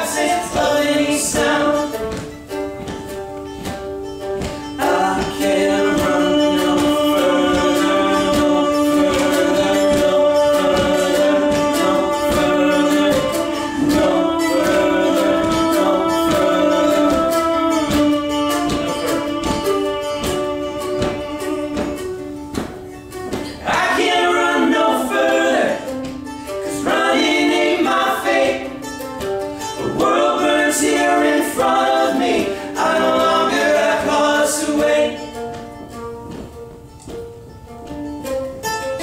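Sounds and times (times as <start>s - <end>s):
men singing in harmony: 0.0s - 2.3s, 4.8s - 22.6s, 23.5s - 26.0s, 26.6s - 28.9s, 29.6s - 35.5s
strummed acoustic guitar: 0.0s - 39.0s.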